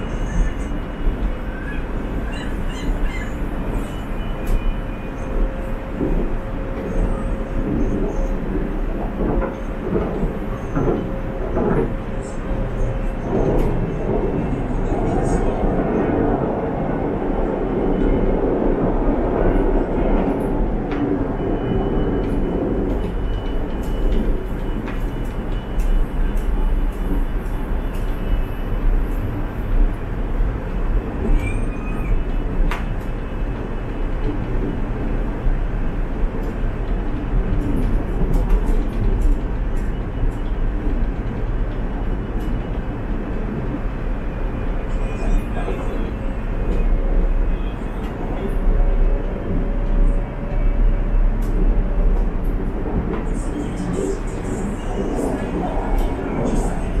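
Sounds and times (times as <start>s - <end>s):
train wheels rumbling on rail: 0.0s - 57.0s.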